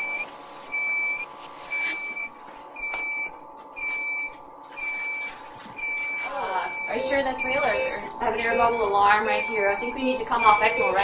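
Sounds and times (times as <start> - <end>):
alarm beeping: 0.0 - 11.0
faint equipment hum: 0.0 - 11.0.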